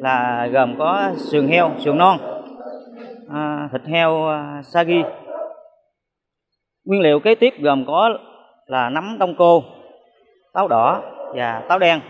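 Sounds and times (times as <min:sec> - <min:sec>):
man speaking: 0:00.0 - 0:05.3, 0:06.9 - 0:09.9, 0:10.6 - 0:12.0.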